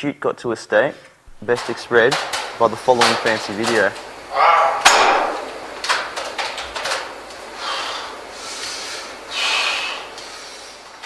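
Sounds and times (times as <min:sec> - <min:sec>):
man breathing out heavily: 0:07.6 - 0:10.8.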